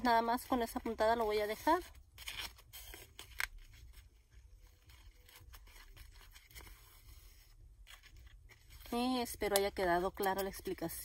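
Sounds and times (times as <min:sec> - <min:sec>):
ribbon rustling: 0:00.4 - 0:10.7.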